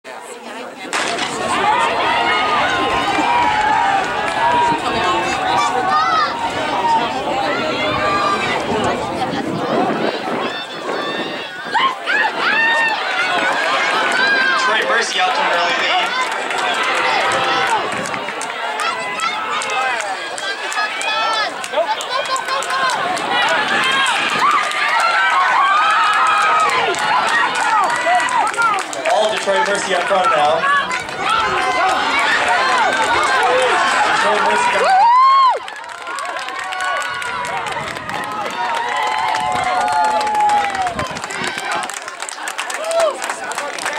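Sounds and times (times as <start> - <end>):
spectators shouting: 0.9 - 43.9.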